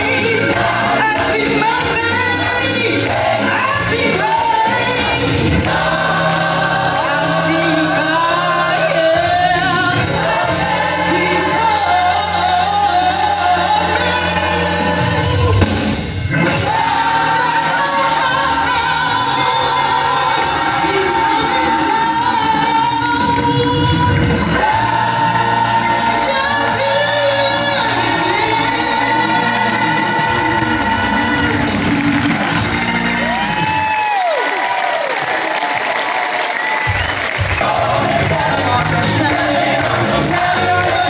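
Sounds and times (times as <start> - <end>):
church choir singing: 0.0 - 33.4, 37.2 - 41.0
keyboard and band accompaniment: 0.0 - 41.0.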